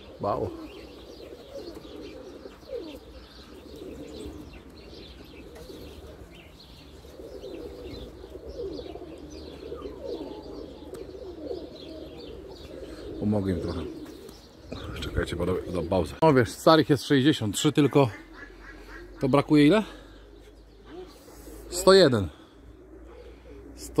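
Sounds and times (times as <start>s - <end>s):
pigeons cooing: 0.0s - 24.0s.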